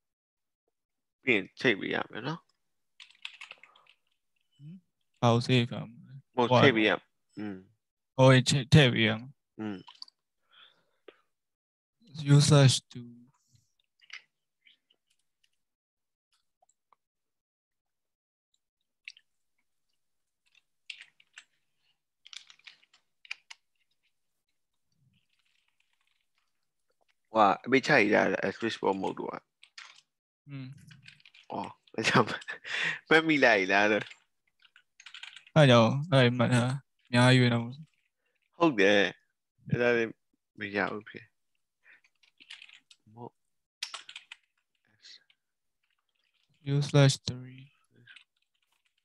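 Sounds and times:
faint keyboard typing: 3.0 - 4.2, 20.4 - 24.2, 24.9 - 27.2, 28.3 - 30.1, 30.8 - 35.7, 41.9 - 43.1, 43.8 - 49.0
typing on a computer keyboard: 34.0 - 35.6, 42.0 - 43.0, 43.8 - 44.7.

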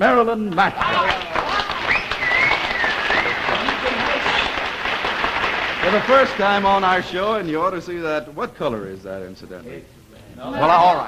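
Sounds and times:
studio audience applauding: 0.6 - 7.1.

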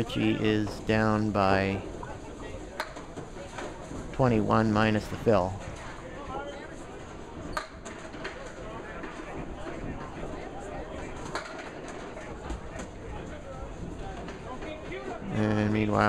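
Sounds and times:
murmur of spectators talking: 0.0 - 16.0.

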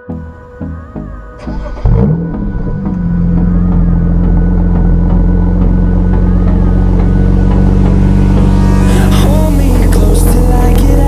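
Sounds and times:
car engine starting and idling: 0.0 - 11.0.

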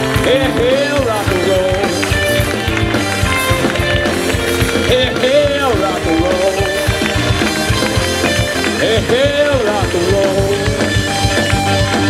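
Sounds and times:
live rock band playing: 0.0 - 12.0
steady drum beat: 0.0 - 12.0.

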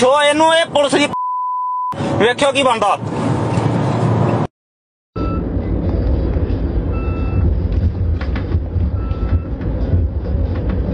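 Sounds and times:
faint short beep: 1.2 - 2.0
vehicle rumble from inside cabin: 5.2 - 10.9.

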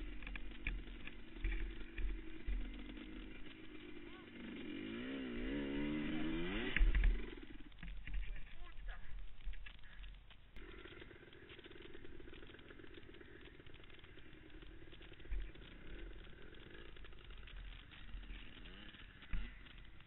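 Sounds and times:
atv engine idling: 0.0 - 20.0.

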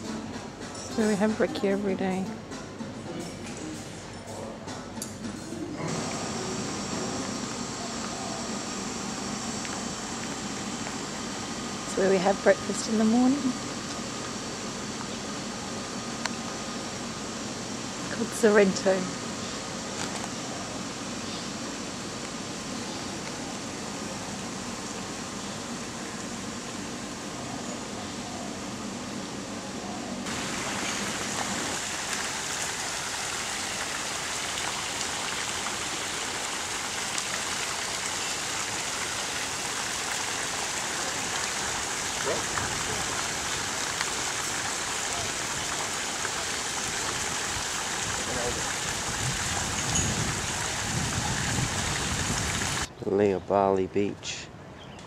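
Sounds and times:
low steady hum: 0.0 - 54.8
fountain water falling: 30.2 - 52.9.

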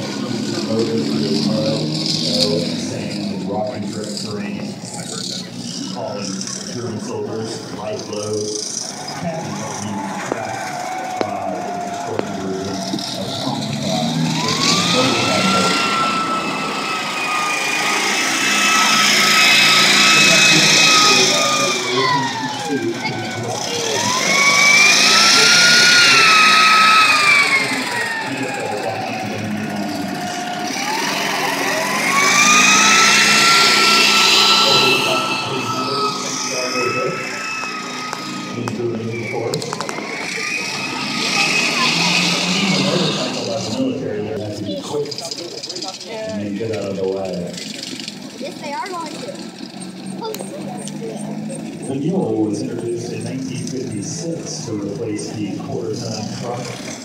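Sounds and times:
vehicle driving with whine: 0.0 - 57.0.

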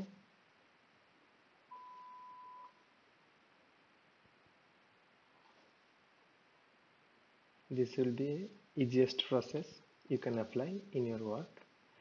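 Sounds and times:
electronic beep: 1.7 - 2.8.

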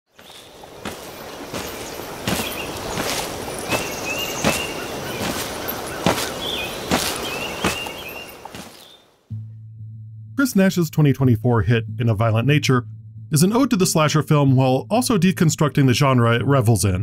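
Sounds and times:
heavy footsteps on forest floor: 0.1 - 9.1
low steady hum: 9.3 - 16.5.

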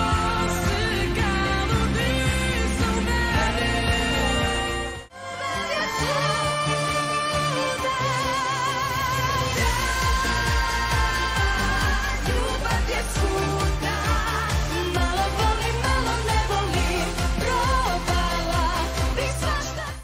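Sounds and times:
dance-pop backing track: 0.0 - 20.0
women singing into microphones: 0.0 - 20.0.

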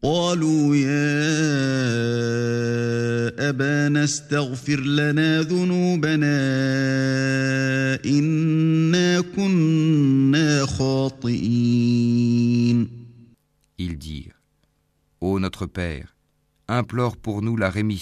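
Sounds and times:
man chanting recitation: 0.0 - 14.4.

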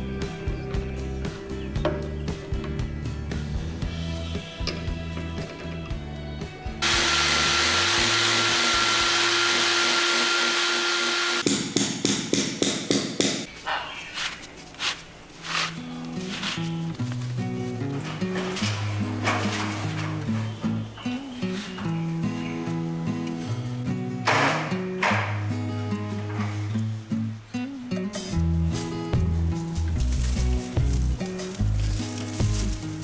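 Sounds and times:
electric drill whining: 6.8 - 11.4.

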